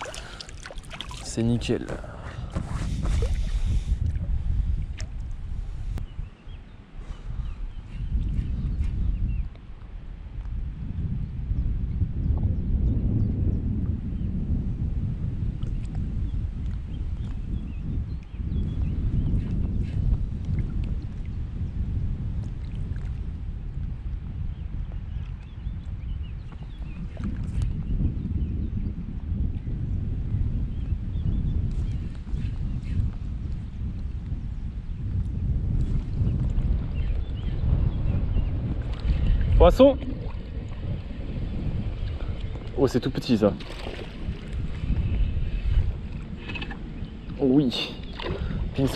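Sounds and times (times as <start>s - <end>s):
gusty wind buffeting microphone: 0.0s - 48.9s.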